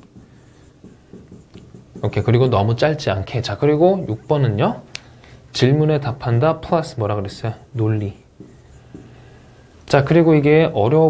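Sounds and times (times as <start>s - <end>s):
pen writing on board: 0.0s - 4.8s, 6.6s - 9.5s.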